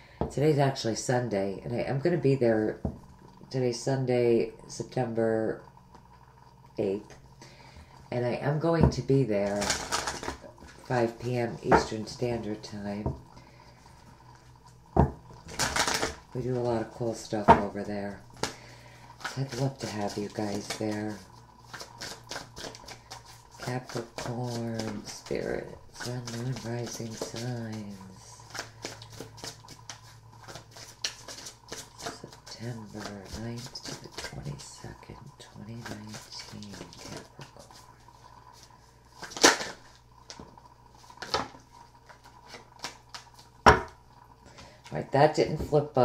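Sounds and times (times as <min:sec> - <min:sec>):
cards being shuffled: 0:09.4 - 0:10.8, 0:15.4 - 0:16.7, 0:19.2 - 0:34.6, 0:35.8 - 0:37.9, 0:38.6 - 0:40.4, 0:41.2 - 0:43.5.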